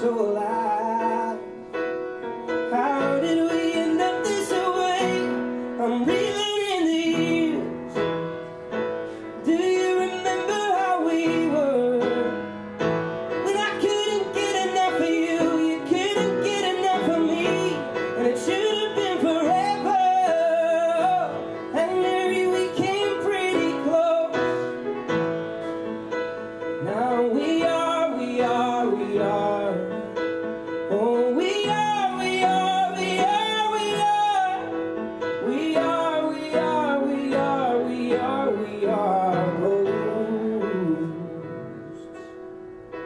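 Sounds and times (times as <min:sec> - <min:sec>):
man singing: 0:00.0 - 0:01.7, 0:02.6 - 0:08.1, 0:09.4 - 0:12.7, 0:13.3 - 0:24.8, 0:26.7 - 0:42.3
upright piano: 0:00.0 - 0:43.0.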